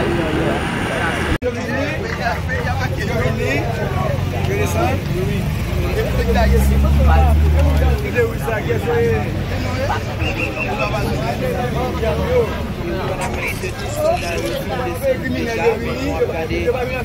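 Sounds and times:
many people talking: 0.0s - 17.0s.

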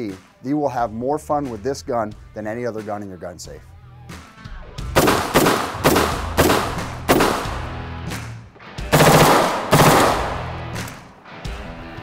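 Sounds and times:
rifle shots: 5.0s - 7.8s, 8.9s - 11.0s.

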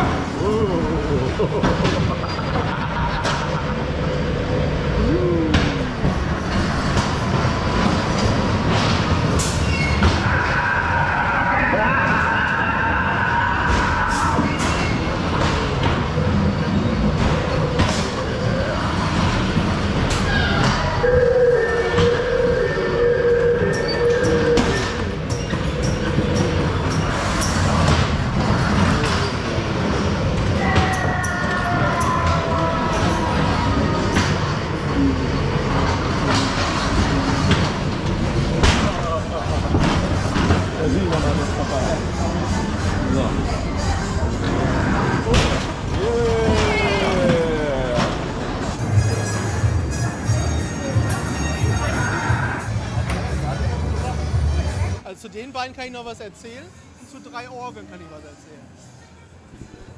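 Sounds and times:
ride car rumbling on track: 0.0s - 55.5s.

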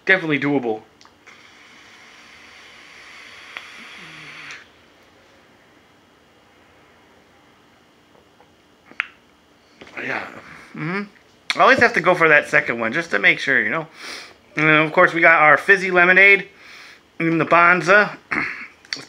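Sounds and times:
vape airy hiss: 1.2s - 4.7s.

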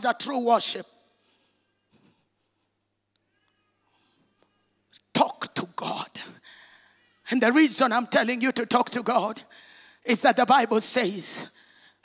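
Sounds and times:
faint high-pitched cry: 1.3s - 2.6s, 3.2s - 5.0s.

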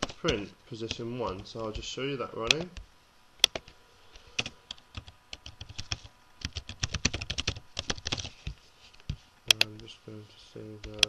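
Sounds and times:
keystrokes on computer keyboard: 3.4s - 3.8s, 4.4s - 9.9s, 10.8s - 11.0s.

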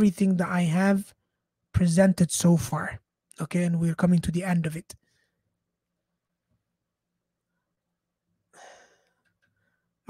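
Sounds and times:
man exhaling: 8.5s - 9.2s.

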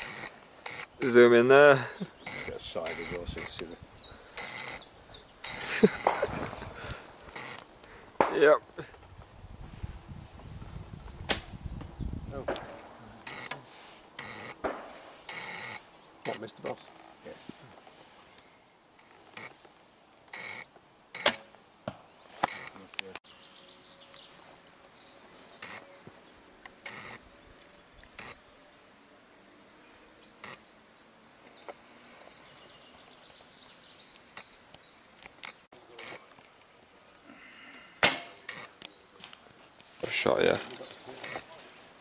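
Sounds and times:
faint birds chirping: 0.0s - 42.0s
arrows striking target: 6.0s - 6.4s, 11.3s - 11.6s, 14.6s - 15.7s, 21.2s - 22.6s, 38.0s - 38.7s
bowstring snapping: 11.3s - 11.5s, 21.2s - 21.6s.

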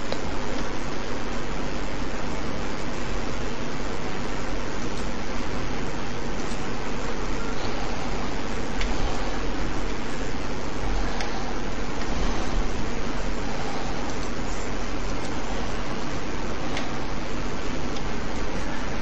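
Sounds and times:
low hum: 0.0s - 19.0s
microphone hiss: 0.0s - 19.0s.

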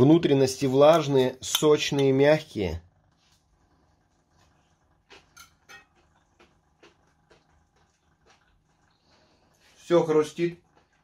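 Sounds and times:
crunchy food being chewed: 4.0s - 9.8s, 10.4s - 11.0s.

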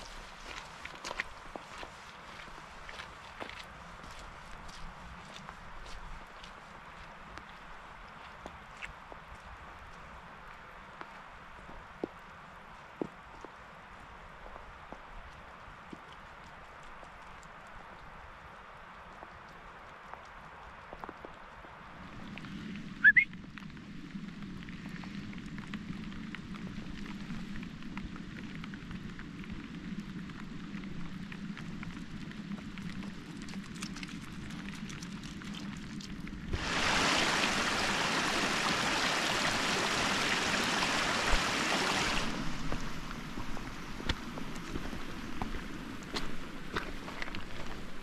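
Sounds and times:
hiss of heavier rain: 0.0s - 33.7s, 34.4s - 48.0s
rain drops falling: 0.0s - 48.0s
light ticks: 14.9s - 21.6s.

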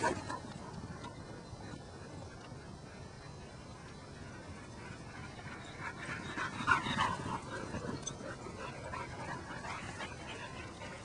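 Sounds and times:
dogs panting: 0.0s - 11.0s.

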